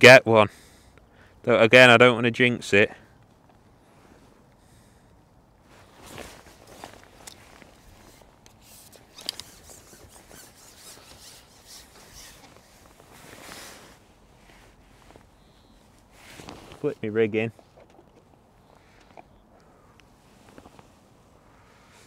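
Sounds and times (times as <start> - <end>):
fishing tackle rustling and clicking: 6.1 - 14.0, 16.0 - 19.8.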